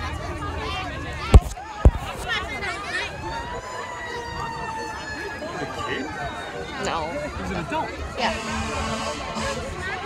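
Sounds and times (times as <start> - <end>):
emergency siren wailing: 0.0 - 10.0.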